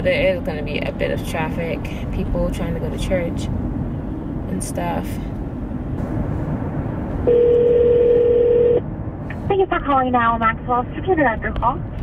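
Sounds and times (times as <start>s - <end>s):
road noise inside a car: 0.0s - 12.0s
telephone ringback tone: 7.3s - 8.8s.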